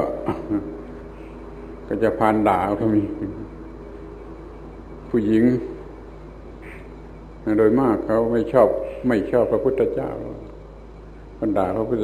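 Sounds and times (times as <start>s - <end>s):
recording hum and hiss: 0.0s - 12.0s
man speaking: 1.9s - 3.5s, 5.1s - 5.8s, 7.4s - 10.5s, 11.4s - 12.0s.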